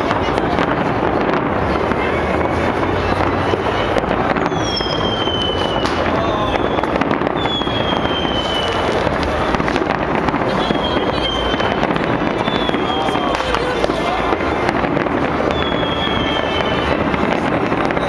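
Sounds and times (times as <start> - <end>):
crowd voices: 0.0 - 18.0
fireworks bangs and crackle: 0.0 - 18.0
whistling rockets: 0.0 - 18.0.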